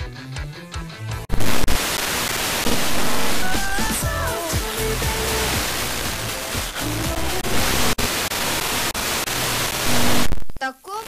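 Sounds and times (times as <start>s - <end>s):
weak noisy radio music: 1.2s - 11.0s
radio static hiss: 1.3s - 11.0s.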